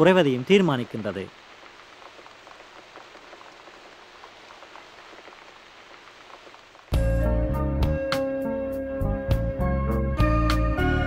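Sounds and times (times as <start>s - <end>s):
raindrop ticks: 0.0s - 7.1s
light rain falling: 0.0s - 11.0s
music: 6.9s - 11.0s.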